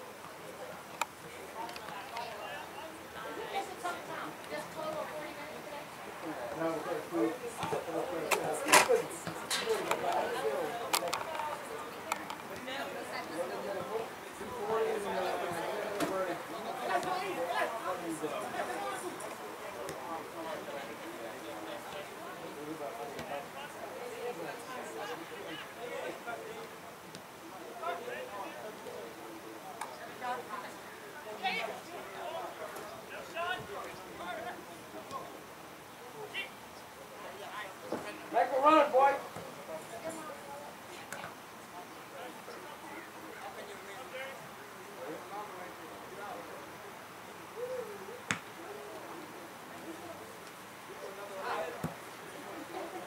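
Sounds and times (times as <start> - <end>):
distant people calling out: 46.7 - 51.3.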